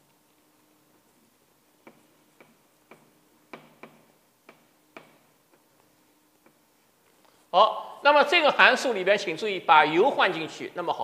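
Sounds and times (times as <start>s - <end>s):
chalk tapping on blackboard: 1.8s - 6.7s.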